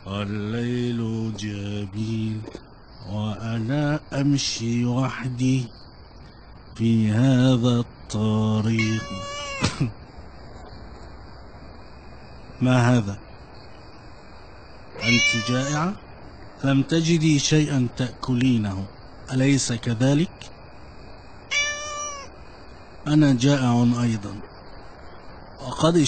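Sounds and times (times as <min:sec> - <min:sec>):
cat meowing: 0:08.7 - 0:09.7, 0:15.0 - 0:16.0, 0:21.5 - 0:22.3.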